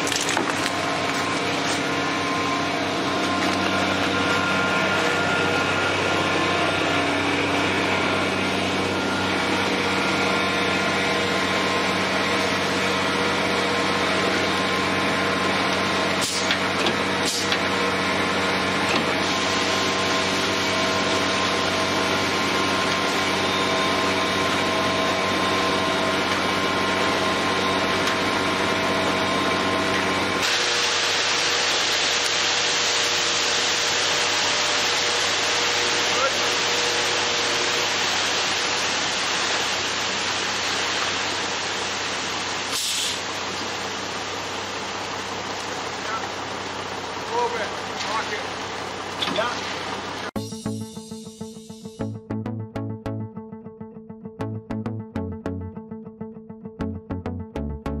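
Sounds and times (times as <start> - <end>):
diesel truck engine at high revs: 0.0 - 50.4.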